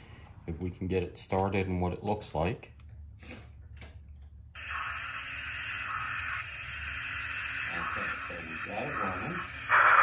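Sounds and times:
steam hiss from small speaker: 4.6s - 10.0s.

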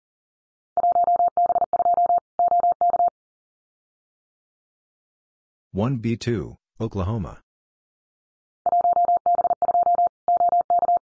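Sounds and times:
morse code tone: 8.7s - 11.0s.

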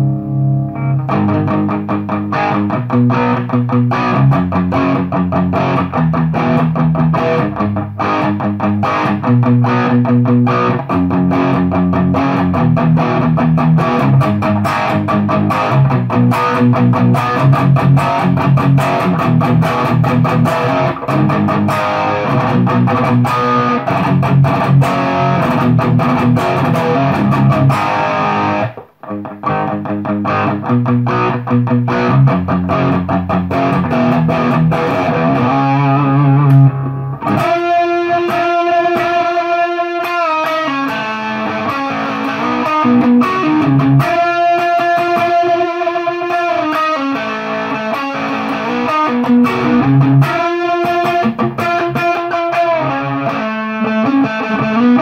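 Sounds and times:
distorted electric guitar: 0.0s - 55.0s.

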